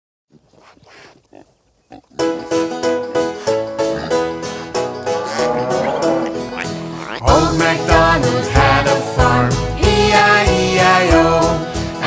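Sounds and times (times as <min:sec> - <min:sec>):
faint animal-like noises: 0:05.0 - 0:07.3.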